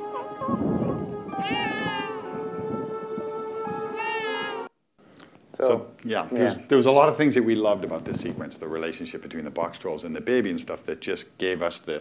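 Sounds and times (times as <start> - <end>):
held musical tone: 0.0 - 4.7
high wavering cry-like voice: 1.3 - 2.3, 4.0 - 4.7.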